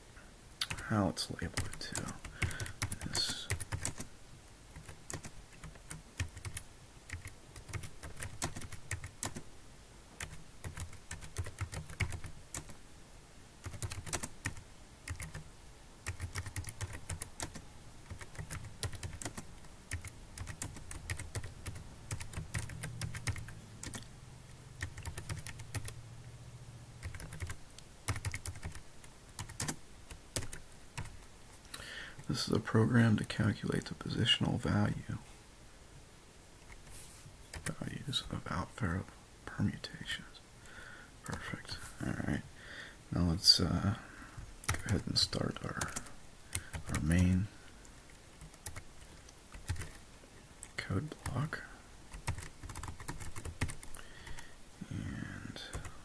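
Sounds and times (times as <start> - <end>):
typing on computer keyboard: 1.5 - 4.1, 4.8 - 9.4, 10.2 - 12.8, 13.6 - 15.4, 16.0 - 24.1, 24.8 - 26.0, 27.0 - 28.8, 29.4 - 31.2, 44.6 - 45.0, 45.8 - 47.1, 48.4 - 50.0, 52.1 - 54.4, 55.7 - 55.9.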